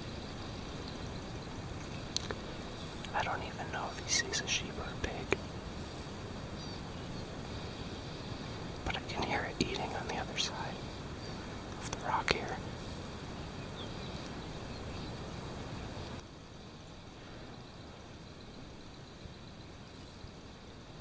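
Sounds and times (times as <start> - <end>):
low background noise: 0.0 - 21.0
hushed whispering: 2.2 - 5.5, 8.8 - 12.8.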